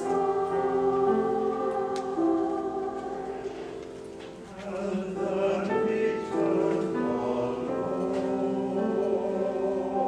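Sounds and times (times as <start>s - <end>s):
mixed choir singing chords: 0.0s - 10.0s.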